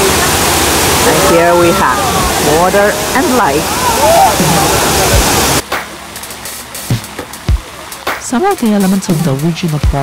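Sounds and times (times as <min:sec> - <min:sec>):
fountain water spray rushing: 0:00.0 - 0:10.0
background music with deep drums: 0:04.5 - 0:10.0.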